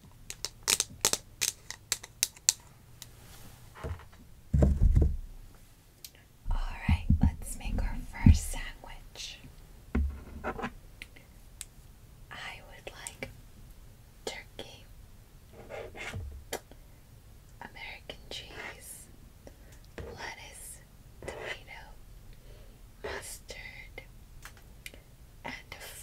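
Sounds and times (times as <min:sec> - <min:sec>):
person whispering: 0:06.5 - 0:09.5, 0:12.3 - 0:13.3, 0:14.3 - 0:14.9, 0:17.6 - 0:19.1, 0:20.0 - 0:22.0, 0:23.0 - 0:24.1, 0:25.5 - 0:26.0.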